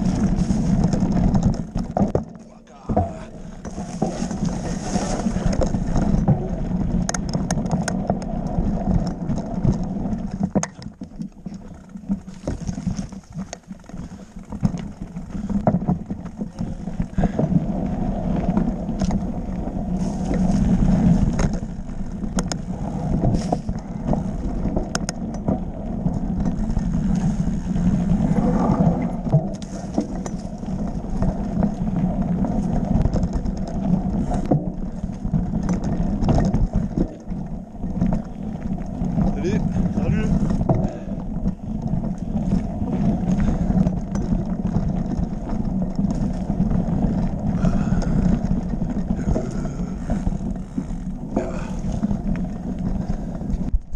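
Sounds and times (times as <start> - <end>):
bike knocks and rattles: 0.0 - 53.9
bike tyres rumbling on stones: 0.0 - 53.9.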